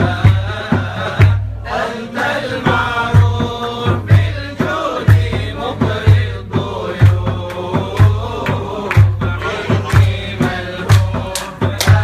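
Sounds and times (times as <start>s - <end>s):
drum beating steadily: 0.0s - 12.0s.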